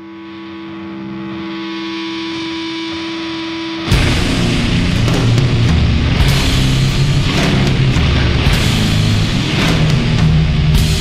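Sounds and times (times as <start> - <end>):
band with distorted guitars and drums: 0.0 - 11.0
guitar feedback drone: 0.0 - 11.0.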